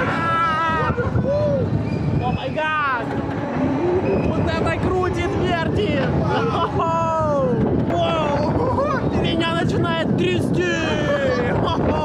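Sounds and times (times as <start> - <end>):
riders yelling: 0.0 - 1.8
wind rumble on microphone: 0.0 - 12.0.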